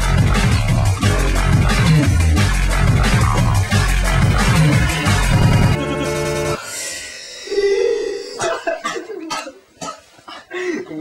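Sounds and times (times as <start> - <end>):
person breathy coughing bursts: 8.2 - 10.8.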